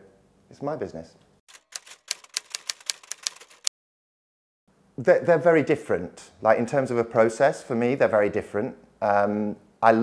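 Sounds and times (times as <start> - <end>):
typewriter keys clacking: 1.5 - 3.7.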